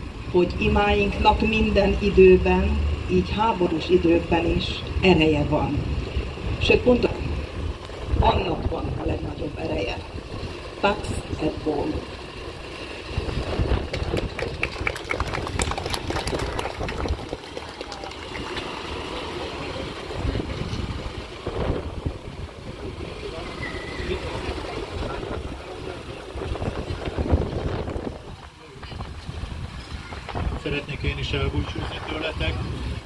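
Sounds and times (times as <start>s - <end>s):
low rumble of traffic: 0.0s - 33.0s
small crowd applauding: 13.8s - 19.8s.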